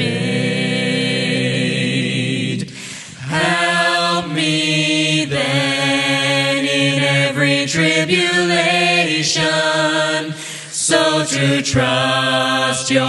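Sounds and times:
choir singing a hymn a cappella: 0:00.0 - 0:13.0
singers breathing: 0:02.6 - 0:03.3, 0:10.2 - 0:10.8.

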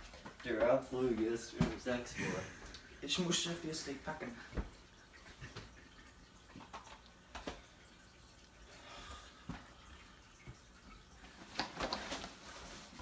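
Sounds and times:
clothes rustling: 0:11.2 - 0:13.0.

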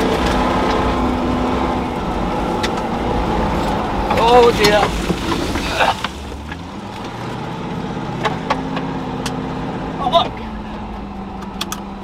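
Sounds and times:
car engine running: 0:00.0 - 0:12.0
tyres on gravel: 0:02.0 - 0:07.2.

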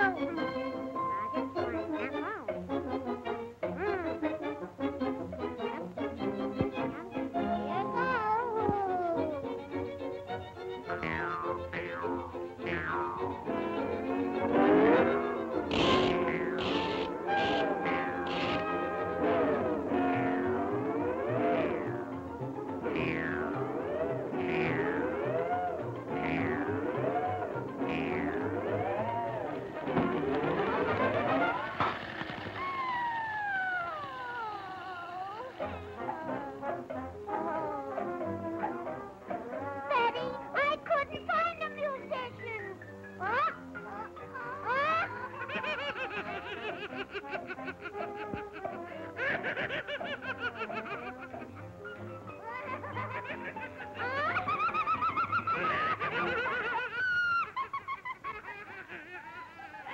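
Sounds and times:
cartoon music with pitch slides: 0:00.0 - 0:59.9.

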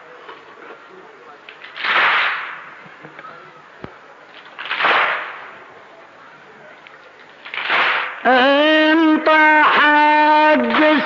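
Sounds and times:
crowd striking chests: 0:01.6 - 0:03.0, 0:04.4 - 0:05.7, 0:07.4 - 0:08.5, 0:09.6 - 0:11.0.

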